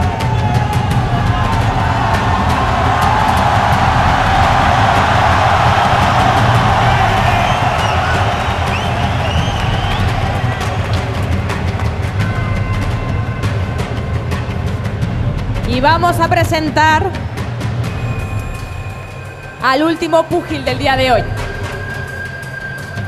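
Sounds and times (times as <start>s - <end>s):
crowd cheering and shouting: 0.0s - 15.1s, 15.7s - 23.0s
arena music with low bass: 0.0s - 22.3s.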